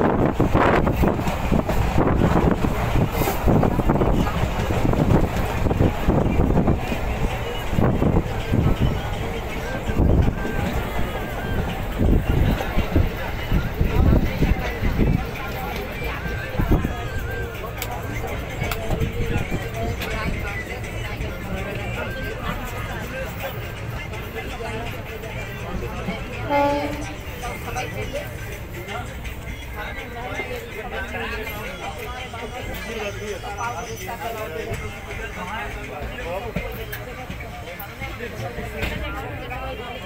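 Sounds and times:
wind buffeting microphone: 0.0 - 15.5
faint voices: 0.0 - 40.0
train wheels rumbling on rail: 0.0 - 40.0.

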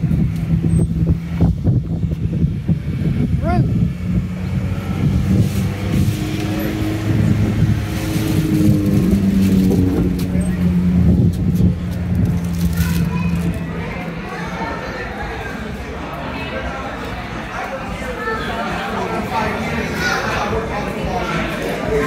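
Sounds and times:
indistinct voices: 0.0 - 22.0.

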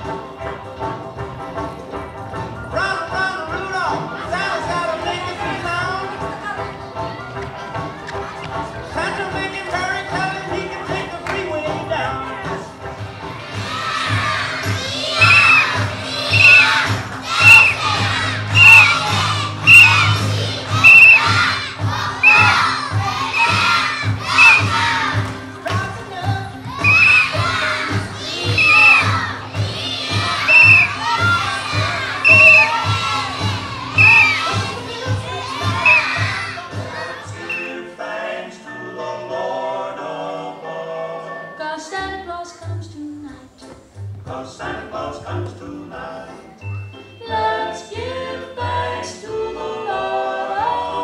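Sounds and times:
children shouting in rhythm: 13.4 - 25.2, 26.6 - 37.4
backing music with low beat: 14.2 - 37.6.

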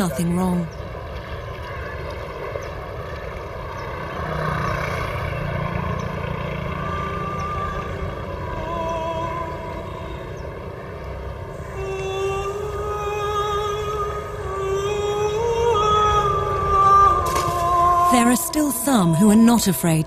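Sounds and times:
boat engine droning: 0.0 - 20.0.

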